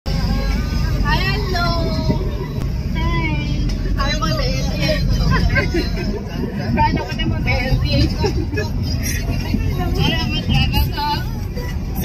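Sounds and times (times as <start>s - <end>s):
car cabin rumble: 0.1s - 12.0s.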